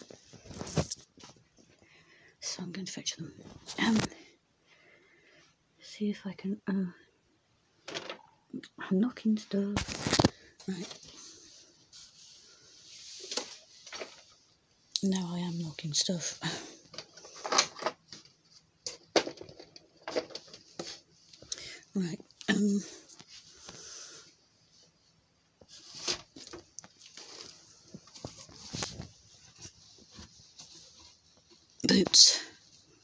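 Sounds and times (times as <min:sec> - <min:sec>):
rummaging among household items: 0:00.0 - 0:01.8, 0:03.3 - 0:04.2, 0:09.6 - 0:23.4, 0:25.6 - 0:33.0
rustling and handling of clutter: 0:00.0 - 0:05.7, 0:07.8 - 0:33.0.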